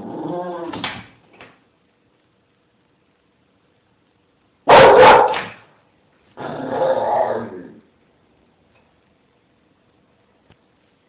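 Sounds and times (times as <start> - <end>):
dog grumbling: 0.0 - 0.8, 6.4 - 7.8
dog barking: 4.7 - 5.6.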